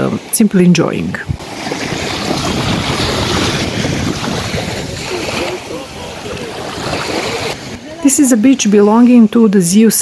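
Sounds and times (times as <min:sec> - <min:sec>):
waves lapping on sand: 0:00.0 - 0:09.4
wind buffeting microphone: 0:00.9 - 0:08.1.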